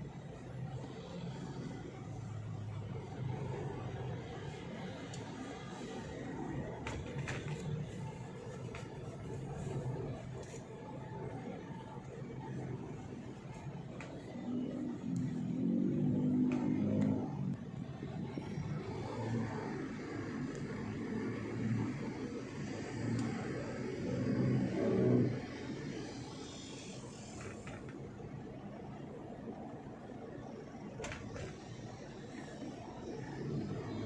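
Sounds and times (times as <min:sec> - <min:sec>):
vehicle engine and road noise: 0:00.0 - 0:34.0.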